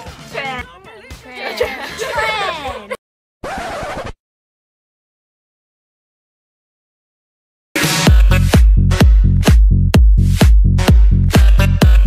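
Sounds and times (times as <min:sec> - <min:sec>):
girls laughing and talking: 0:00.2 - 0:03.0
record scratch effect: 0:03.4 - 0:04.2.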